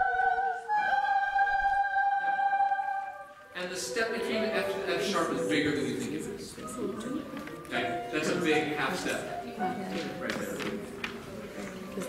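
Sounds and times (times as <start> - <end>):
choir singing sustained notes: 0.0 - 6.4.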